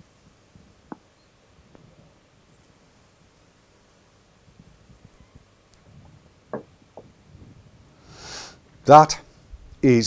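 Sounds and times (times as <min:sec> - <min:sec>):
faint soft low noises: 0:00.0 - 0:10.0.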